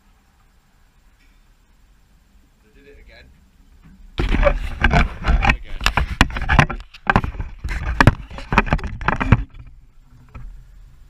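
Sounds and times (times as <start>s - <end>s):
fingers knocking and rubbing camera: 4.2s - 9.7s.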